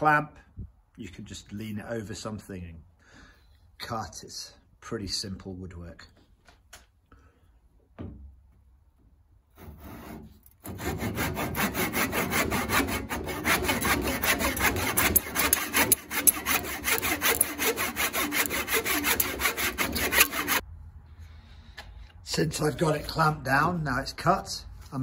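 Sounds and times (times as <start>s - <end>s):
hand saw cutting wood: 9.6s - 20.6s.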